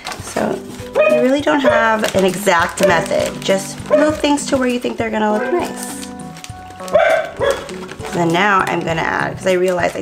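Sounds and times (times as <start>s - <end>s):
background music: 0.0s - 10.0s
dog barking: 1.0s - 2.0s, 3.9s - 4.2s, 6.9s - 7.7s.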